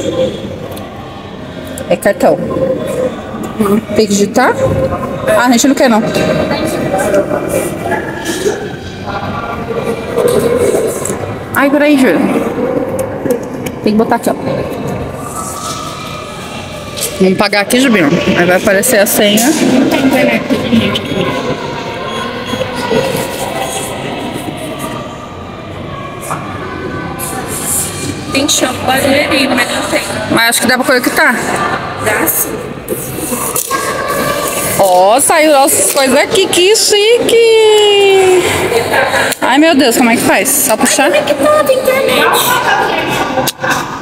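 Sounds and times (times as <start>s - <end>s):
background din in a hall: 0.0s - 44.0s
faint voices: 0.0s - 44.0s
indistinct chatter: 0.0s - 44.0s.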